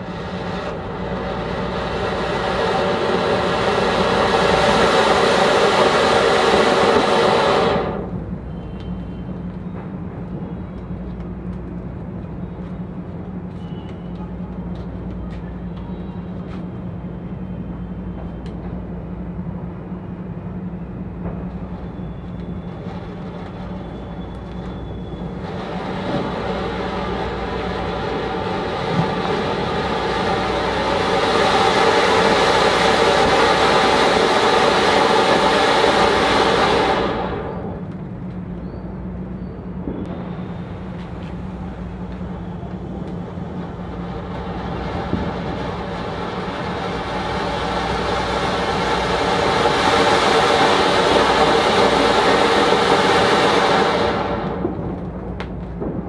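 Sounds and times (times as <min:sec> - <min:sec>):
firework fountain hissing: 0:00.0 - 0:09.4, 0:21.1 - 0:38.1, 0:39.8 - 0:56.0.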